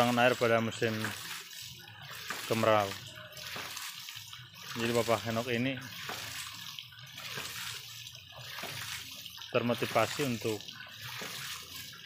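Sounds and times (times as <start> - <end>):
water gushing and splashing: 0.0 - 12.0.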